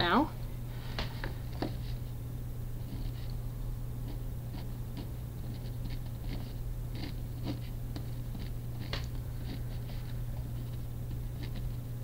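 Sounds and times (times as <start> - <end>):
steady low hum: 0.0 - 12.0
pen scratching on paper: 2.8 - 3.4, 4.0 - 11.8.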